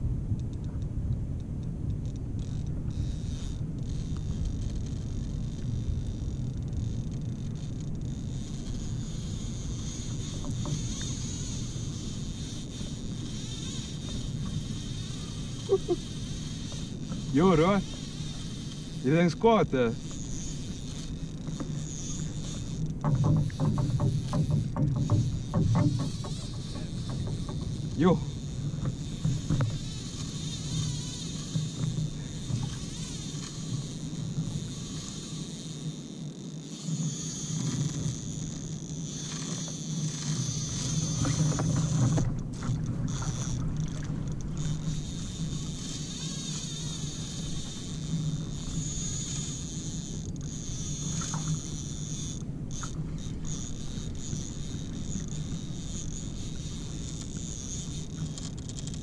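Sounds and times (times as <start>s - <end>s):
water against hull: 0.0s - 59.0s
reel clicks: 0.1s - 59.0s
fishing reel winding: 0.4s - 59.0s.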